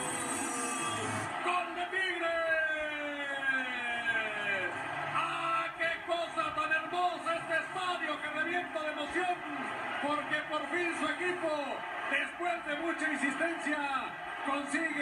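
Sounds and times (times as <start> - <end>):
man talking: 5.2 - 15.0.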